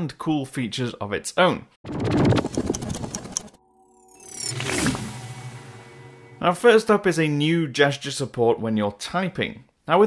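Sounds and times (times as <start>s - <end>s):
whoosh: 3.6s - 7.0s
held musical chord: 3.6s - 7.1s.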